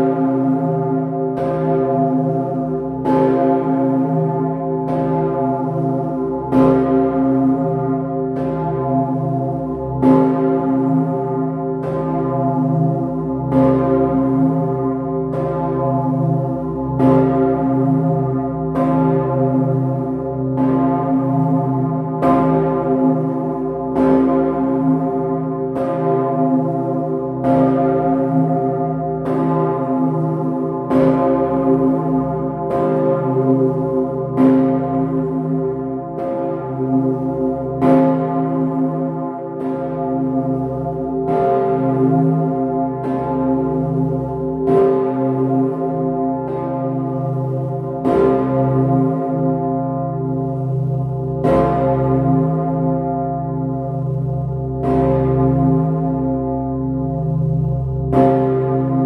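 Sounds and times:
large church bell ringing: 0.0 - 59.0
large bell ringing: 51.3 - 59.0.

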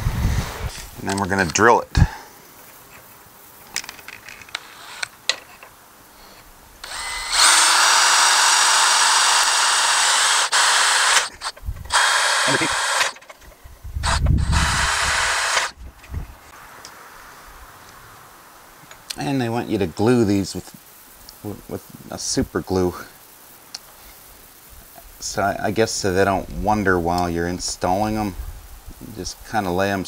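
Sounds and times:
cordless drill boring: 6.8 - 13.3, 14.0 - 15.8.

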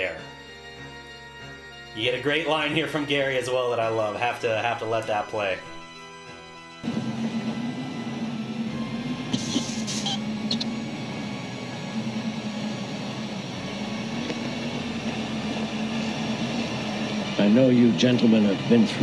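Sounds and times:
low drone: 6.8 - 19.0.

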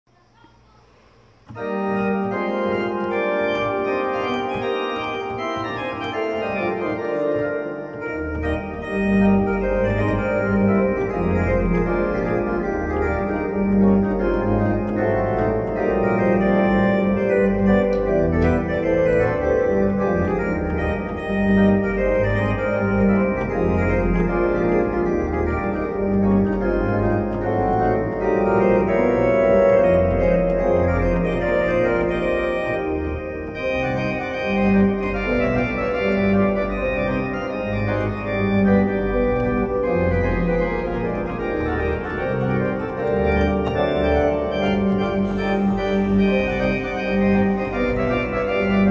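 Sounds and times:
electronic organ playing: 0.6 - 48.9.

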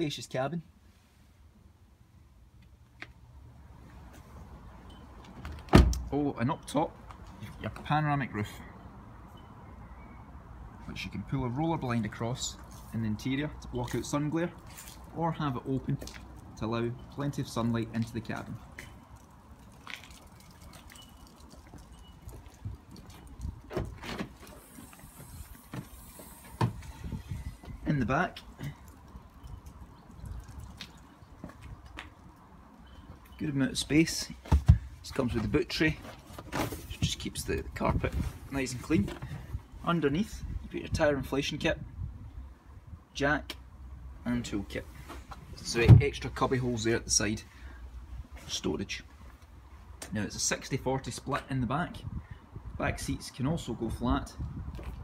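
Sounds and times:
wind rumble on microphone: 22.0 - 24.1, 26.6 - 28.2, 37.0 - 43.1, 51.7 - 55.0.

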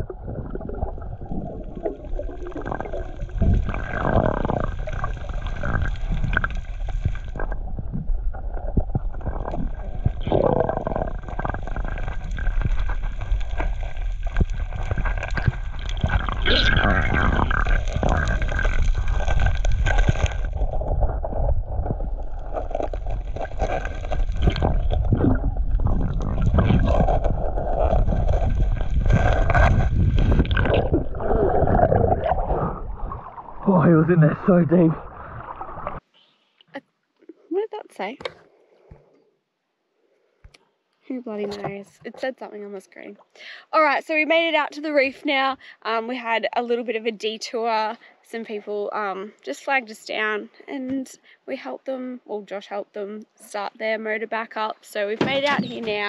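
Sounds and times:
underwater rumbling wash of water: 0.0 - 36.0.

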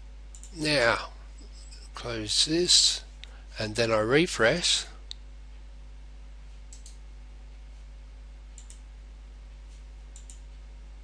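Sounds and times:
low steady hum: 0.0 - 11.0
computer mouse clicking: 0.3 - 0.6, 6.7 - 7.0, 8.6 - 8.8, 10.1 - 10.4.

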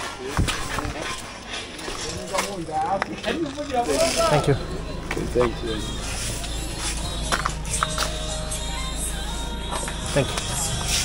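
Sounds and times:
people talking on street: 0.0 - 11.0.

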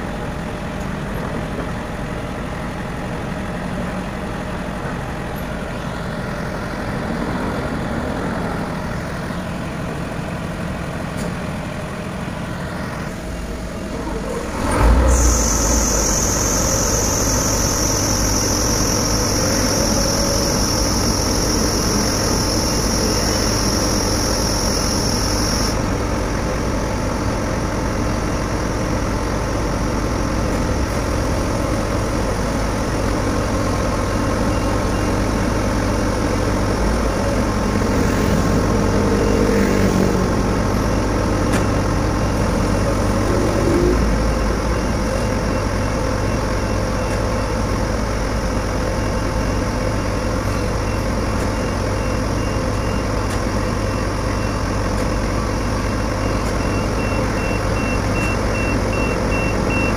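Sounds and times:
diesel engine idling: 0.0 - 59.9
high steady whine: 12.3 - 59.8.

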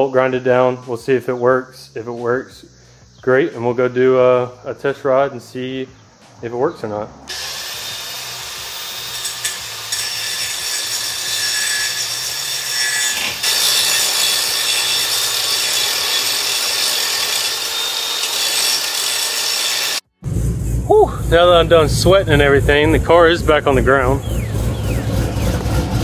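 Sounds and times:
angle grinder grinding metal: 7.3 - 20.1.

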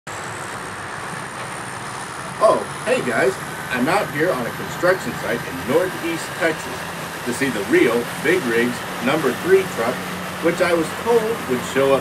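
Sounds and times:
heavy machinery engine rumble: 0.1 - 12.0.

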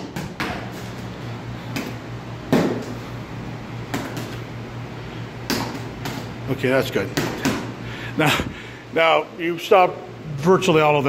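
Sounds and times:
steady low hum: 0.0 - 11.0
boxing gloves smacking: 1.7 - 3.0, 3.9 - 4.4, 5.4 - 6.4.

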